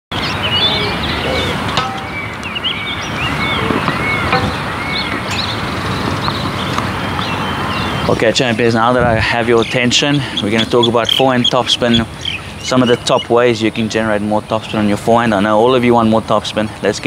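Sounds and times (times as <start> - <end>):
birds chirping: 0.1 - 17.0
outdoor background hiss: 0.2 - 17.0
sharp knocks: 1.7 - 2.5, 3.8 - 5.2.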